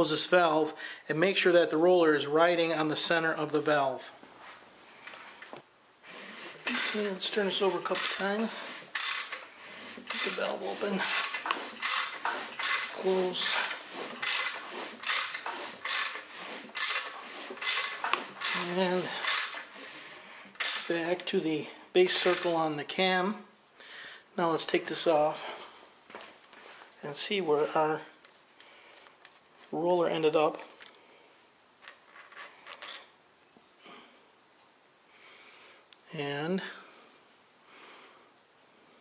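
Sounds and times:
hand ratchet clicking: 0:06.6 - 0:19.7, 0:20.5 - 0:21.0, 0:22.2 - 0:22.6.

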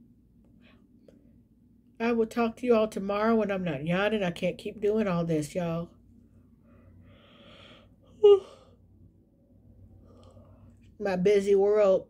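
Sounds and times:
woman yawning: 0:08.2 - 0:08.7.

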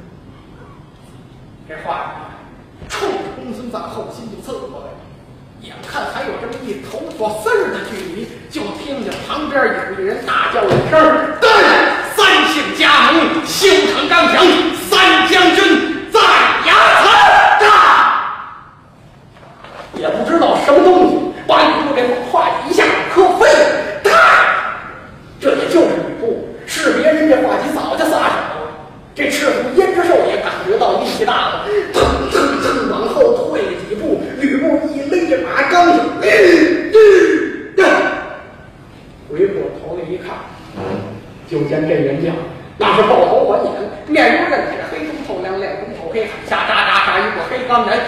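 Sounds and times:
man telling a story loudly: 0:05.6 - 0:18.3, 0:20.0 - 0:24.8, 0:25.4 - 0:38.4, 0:41.5 - 0:48.0.

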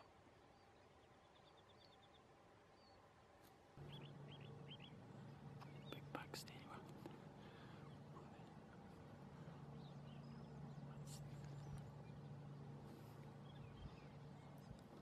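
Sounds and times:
steady low hum: 0:00.0 - 0:15.0
faint whispering: 0:05.5 - 0:15.0.

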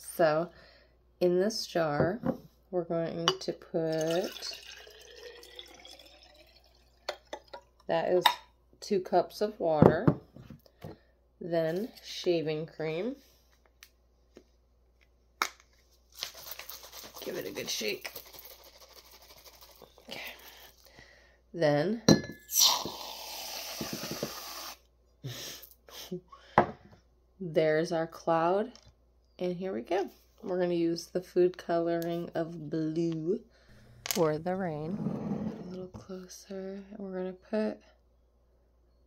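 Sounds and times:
water trickling into a glass jar: 0:03.8 - 0:07.9
water drips: 0:03.9 - 0:07.9
glassy clink: 0:04.0 - 0:07.6, 0:22.1 - 0:22.7.

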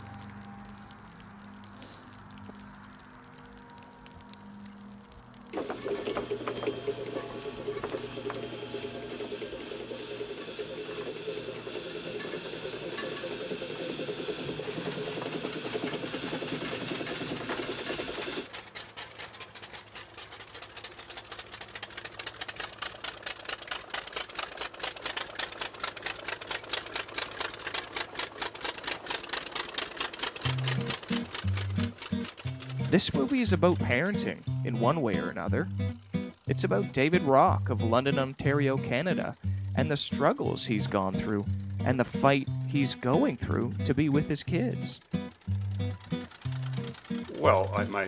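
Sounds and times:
bulldozer engine running: 0:00.0 - 0:48.0
loud mechanical running sound: 0:03.3 - 0:48.0.

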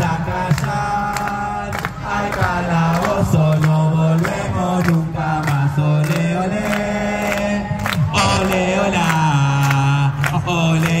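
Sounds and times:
chant on long notes: 0:00.0 - 0:11.0.

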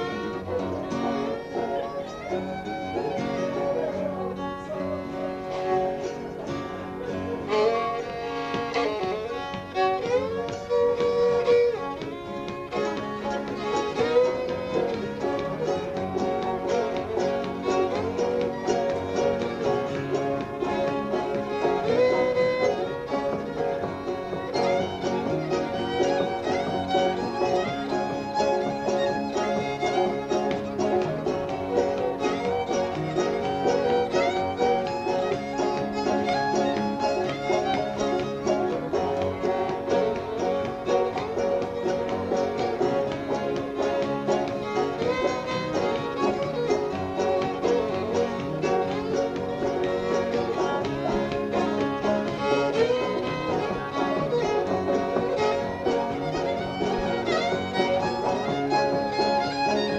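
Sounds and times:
banjo: 0:00.0 - 0:59.9
fast fiddle melody: 0:00.0 - 0:59.9
guitar accompaniment: 0:00.0 - 0:59.9.

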